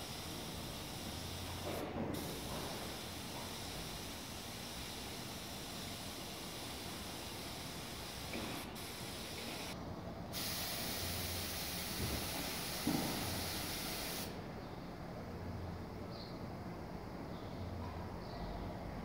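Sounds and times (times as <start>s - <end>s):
paint spray gun hissing: 0.0s - 14.4s.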